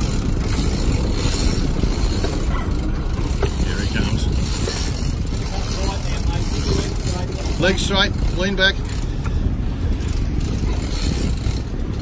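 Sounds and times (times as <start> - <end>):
boat engine rumbling: 0.0 - 12.0
rush of wind and water: 0.0 - 12.0.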